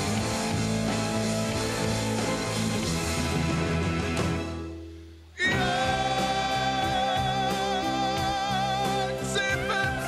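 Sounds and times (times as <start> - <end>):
band playing: 0.0 - 10.0
man singing with vibrato: 5.4 - 10.0.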